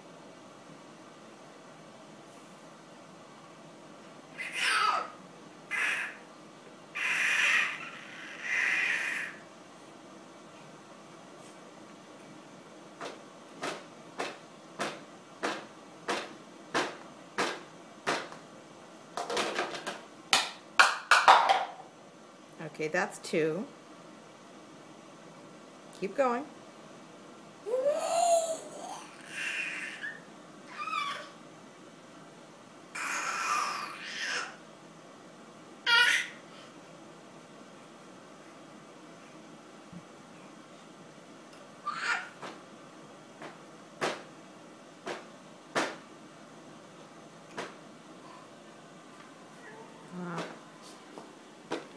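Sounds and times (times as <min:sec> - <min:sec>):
baby squealing: 0:04.4 - 0:06.2, 0:07.0 - 0:09.4, 0:27.7 - 0:31.4, 0:33.0 - 0:34.6, 0:35.9 - 0:36.4, 0:41.8 - 0:42.4.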